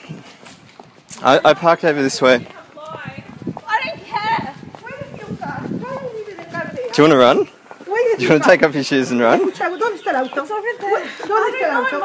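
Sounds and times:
faint footsteps: 0.0 - 12.0
people arguing: 1.2 - 12.0.

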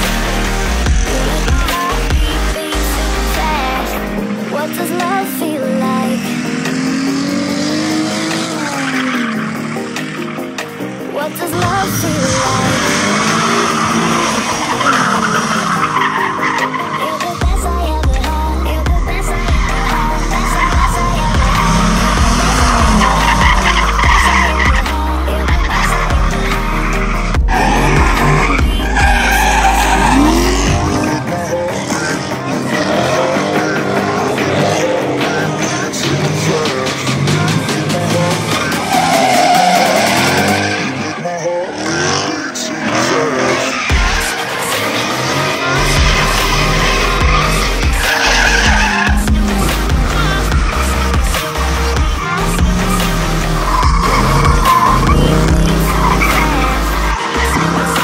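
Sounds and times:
music with heavy bass beat: 0.0 - 40.9, 43.9 - 58.0
car engines revving: 0.0 - 58.0
tyres squealing on asphalt: 0.0 - 58.0.

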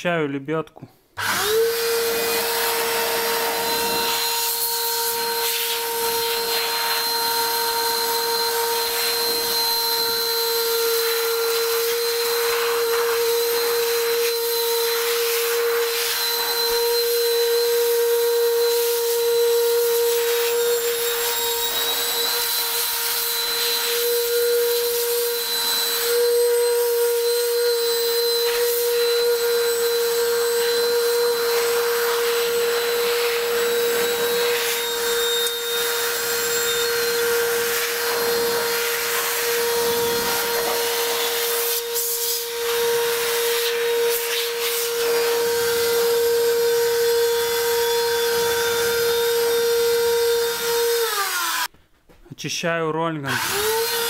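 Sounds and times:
air blower motor whining: 1.2 - 51.7, 53.3 - 54.0.

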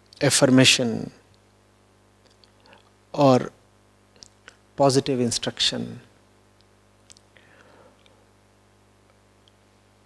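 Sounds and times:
low steady hum: 0.0 - 10.0
faint mouth clicks: 7.0 - 7.3
soft breath: 7.4 - 8.3.

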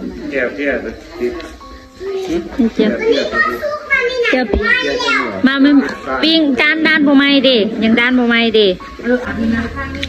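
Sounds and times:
children chattering and calling out: 0.0 - 7.7.

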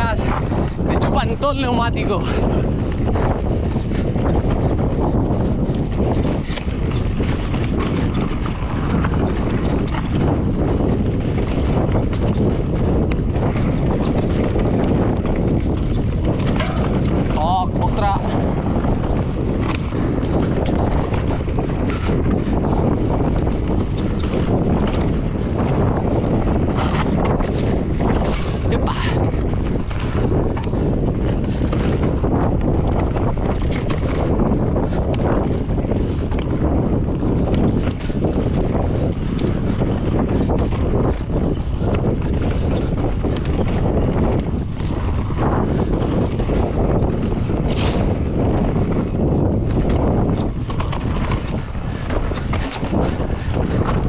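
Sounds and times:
bike rattling and knocking: 0.0 - 54.0
bike tyres rolling over stones: 0.0 - 54.0
wind noise on microphone: 0.0 - 54.0.

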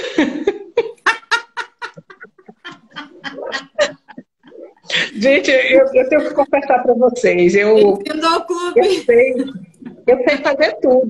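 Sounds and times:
women laughing: 0.0 - 6.7.

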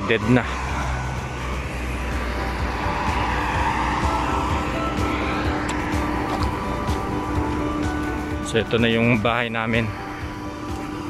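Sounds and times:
faint background music: 0.0 - 11.0
highway traffic: 0.0 - 11.0
vehicle passing: 0.0 - 11.0.

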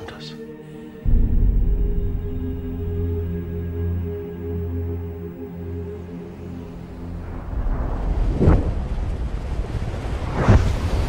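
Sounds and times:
deep whoosh: 1.0 - 5.0
steady low wind rumble: 1.0 - 11.0.

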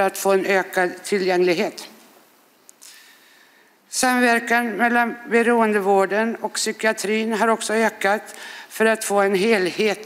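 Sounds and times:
woman speaking: 0.0 - 2.0, 3.9 - 10.0
breathy in-breath: 8.4 - 8.7.

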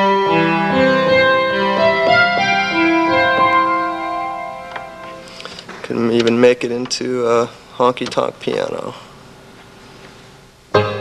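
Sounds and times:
sampled grand piano notes and chords: 0.0 - 6.5, 10.7 - 11.0.

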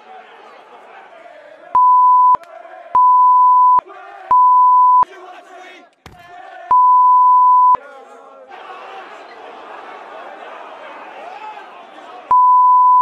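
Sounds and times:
crowd shouting: 0.0 - 1.8, 2.4 - 3.0, 3.8 - 4.4, 5.0 - 6.8, 7.8 - 12.3
censor bleep tone: 1.8 - 2.4, 3.0 - 5.0, 6.7 - 7.8, 12.3 - 13.0.

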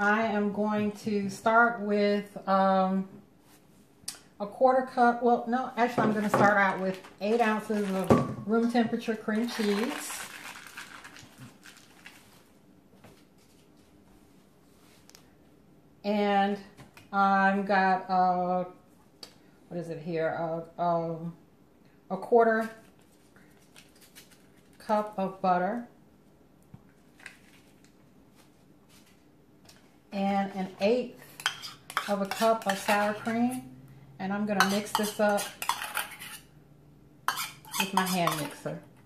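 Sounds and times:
foil wrapper crinkling: 9.4 - 12.5, 23.5 - 24.9.

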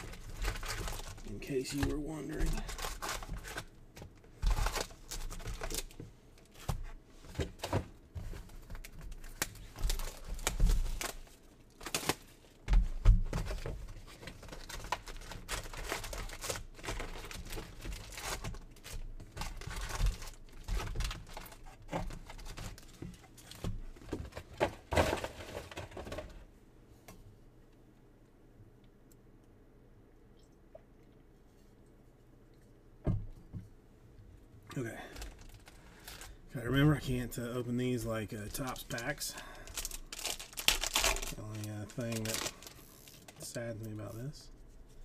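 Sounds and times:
plastic wrappers crinkling and tearing: 0.0 - 24.4, 34.8 - 45.0.

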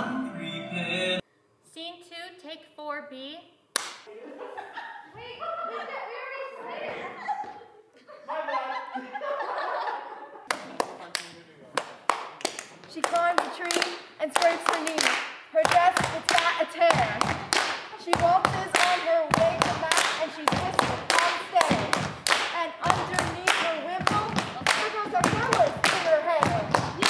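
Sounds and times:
group clapping hands: 3.8 - 4.1, 10.5 - 27.0.

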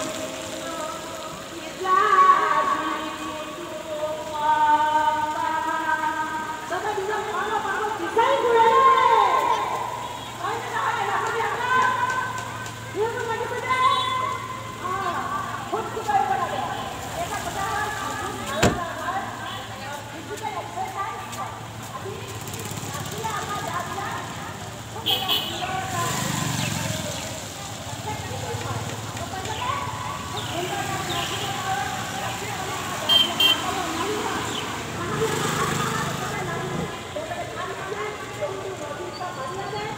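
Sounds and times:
people calling and talking: 0.0 - 39.9
street traffic: 0.0 - 39.9
vehicle driving past: 25.8 - 27.6.

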